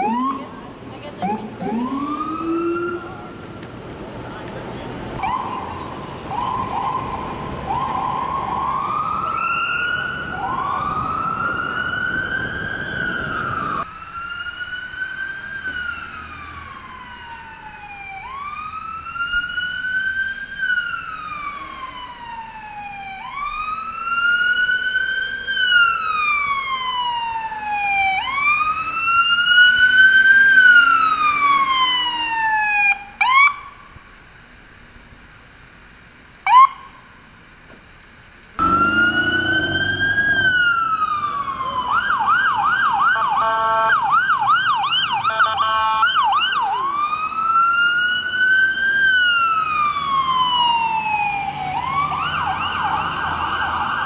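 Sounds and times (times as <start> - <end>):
siren chirps: 0.0 - 3.4, 5.2 - 24.9, 38.6 - 54.0
ambulance siren wailing: 0.0 - 3.6, 5.2 - 33.7, 38.6 - 54.0
street noise: 0.0 - 54.0.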